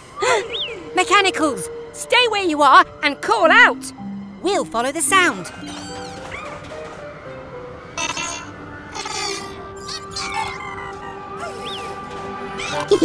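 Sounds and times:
soft background music: 0.0 - 13.0
cartoon robots chirping and beeping: 4.5 - 6.6.

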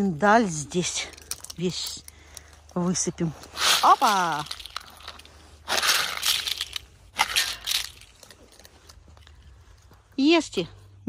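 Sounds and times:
almonds rattling out of plastic tub: 3.6 - 8.2.

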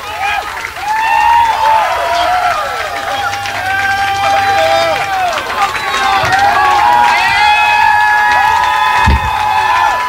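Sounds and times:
audience cheering and clapping: 0.0 - 10.0
voices yelling: 0.0 - 10.0.

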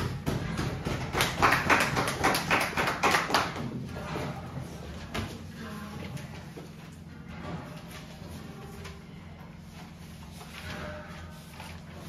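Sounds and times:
small group clapping: 0.0 - 3.9.

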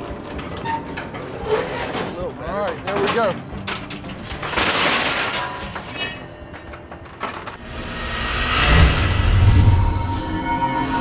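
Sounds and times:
chain-mesh dredge clanking and rattling: 0.0 - 7.6
rising whoosh into deep boom: 7.6 - 11.0.

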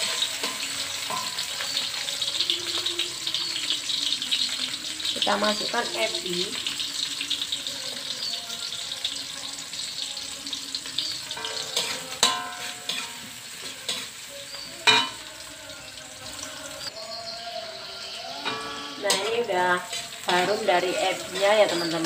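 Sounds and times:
spatula clanking on wok: 0.0 - 3.7, 10.8 - 15.3, 18.4 - 22.0
metal spatula scraping wok: 0.0 - 4.4, 10.8 - 15.6, 16.2 - 22.0
food sizzling in hot oil: 0.0 - 22.0.

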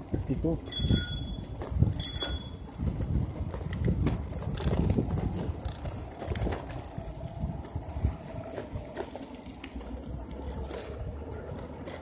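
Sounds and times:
bicycle rumbling along street: 0.0 - 12.0
bicycle bell ringing: 0.6 - 2.8.

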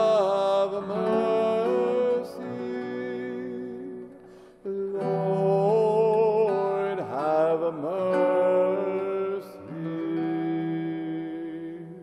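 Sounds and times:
man singing chant-like phrase: 0.0 - 4.1, 4.8 - 12.0
acoustic guitar: 0.0 - 12.0.

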